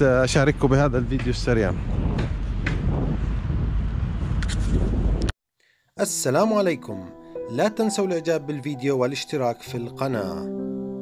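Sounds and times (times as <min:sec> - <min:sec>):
low rumbling street noise: 0:00.0 - 0:05.3
wind on microphone: 0:00.8 - 0:05.3.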